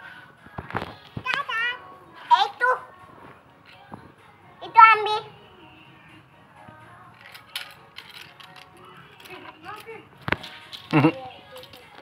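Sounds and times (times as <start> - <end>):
faint background music: 0.0 - 12.0
young child's voice: 1.2 - 2.9
plastic toys clicking and knocking: 7.1 - 12.0.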